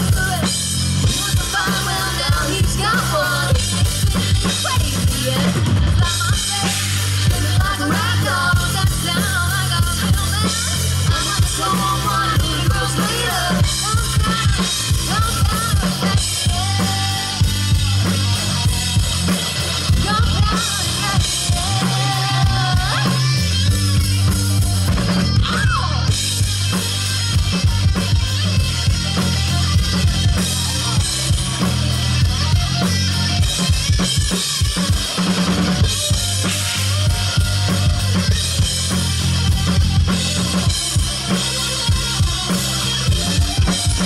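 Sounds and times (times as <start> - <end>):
drum kit: 0.0 - 44.0
electric bass: 0.0 - 44.0
electric guitar: 0.0 - 44.0.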